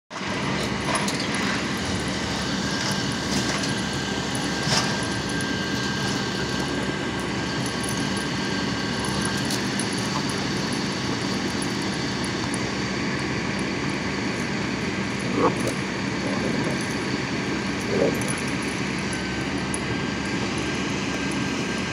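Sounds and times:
mechanical drone: 0.2s - 21.9s.

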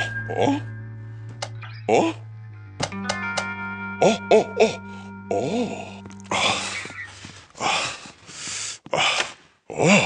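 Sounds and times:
background music with held tones: 0.0s - 7.1s.

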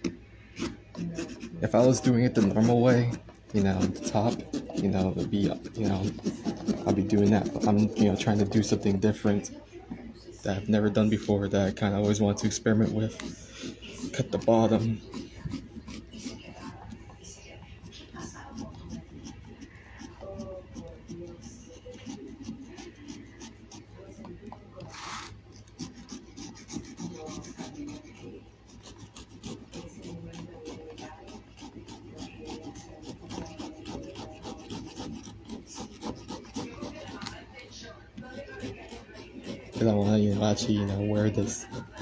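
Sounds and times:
knife sawing through pumpkin: 0.0s - 9.5s, 10.6s - 24.2s, 24.9s - 42.0s.

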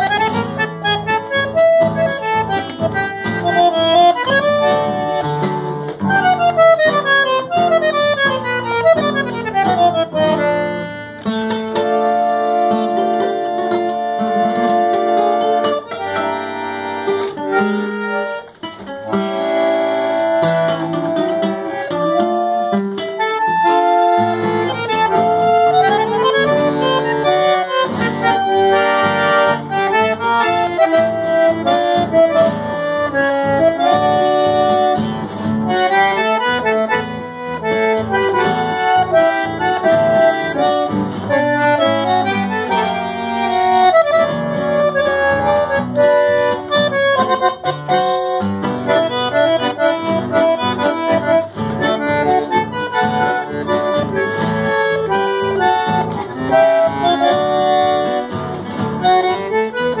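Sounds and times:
acoustic guitar strumming chords: 0.0s - 60.0s
bandoneon melody: 0.0s - 60.0s.

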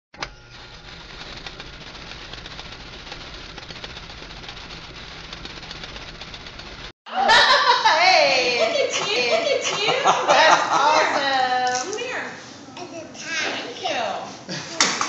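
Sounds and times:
voices and laughter: 7.1s - 11.6s.

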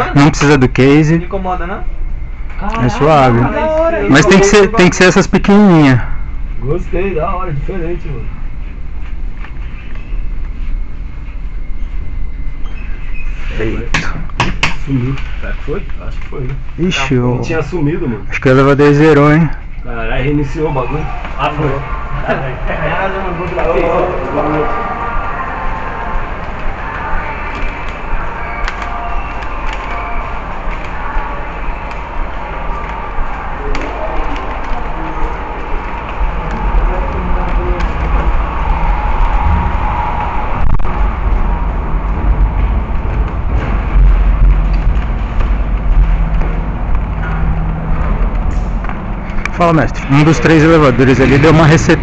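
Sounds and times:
low steady rumble: 0.0s - 52.0s
faint music: 14.8s - 52.0s.

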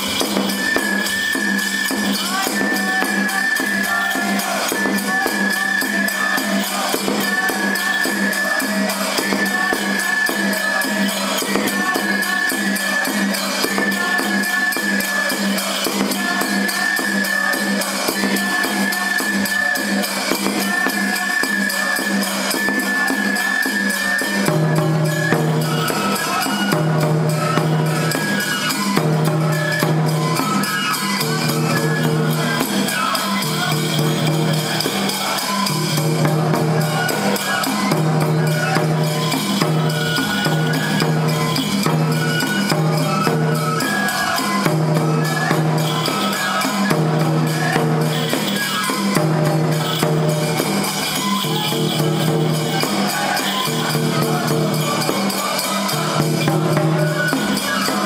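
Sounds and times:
taiko drums beating: 0.0s - 55.3s
high flute melody: 0.0s - 55.6s.

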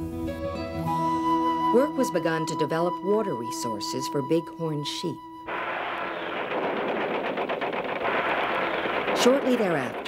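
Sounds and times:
rapid machine-gun fire: 5.5s - 10.0s.

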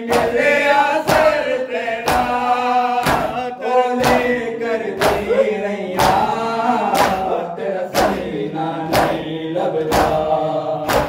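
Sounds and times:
chanted lament: 0.0s - 11.0s
chest beating slaps: 0.1s - 4.4s, 5.0s - 5.3s, 6.0s - 7.3s, 7.9s - 11.0s.

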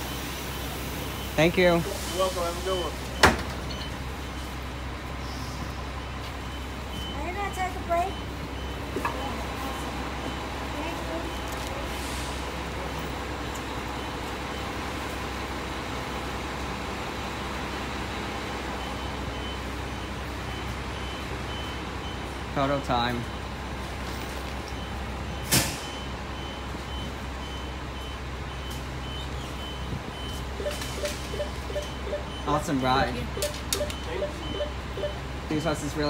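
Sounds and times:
high-pitched warning beep: 0.0s - 11.6s, 24.7s - 35.8s
bus diesel engine idling: 0.0s - 36.0s.

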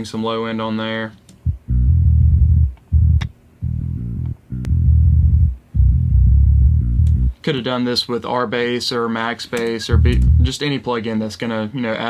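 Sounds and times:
low bass guitar line: 1.4s - 7.4s, 9.9s - 10.5s.

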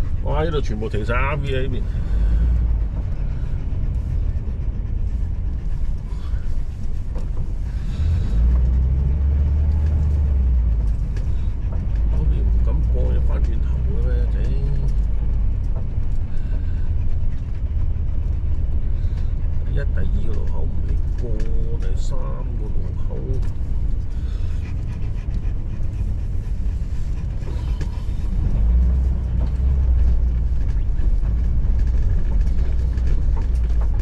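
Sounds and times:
vehicle engine and road noise: 0.0s - 34.0s.

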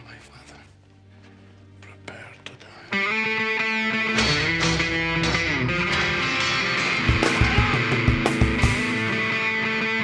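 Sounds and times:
soft whispering: 0.0s - 3.0s
faint musical drone: 0.0s - 7.1s
strummed electric guitar: 2.9s - 10.0s.

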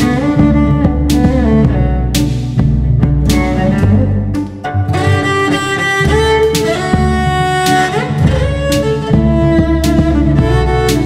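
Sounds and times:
cello bowing a melody: 0.0s - 11.0s
low bass line: 0.0s - 11.0s.

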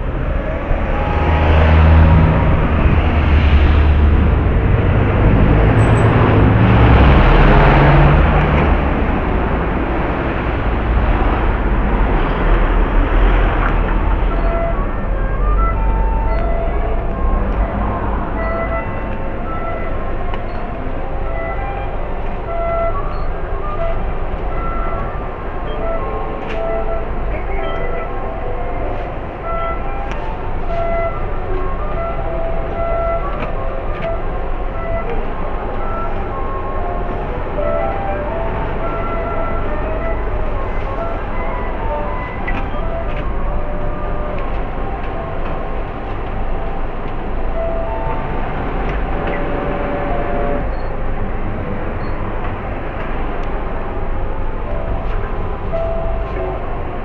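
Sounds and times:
background music: 0.0s - 57.0s
steady low rumbling: 0.0s - 57.0s.

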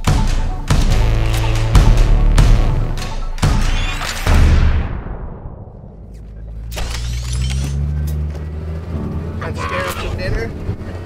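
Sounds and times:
music with deep bass: 0.0s - 3.8s
vehicle driving: 4.2s - 11.0s.

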